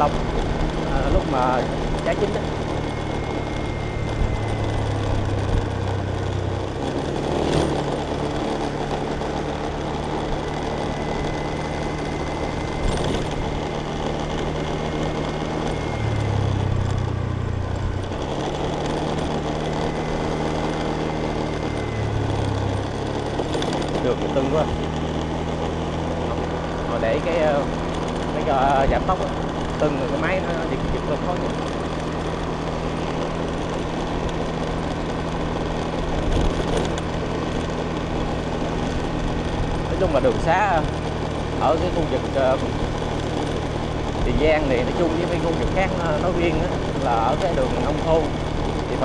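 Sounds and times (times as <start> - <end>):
motorbike engine cruising: 0.0 - 49.0
road and wind noise: 0.0 - 49.0.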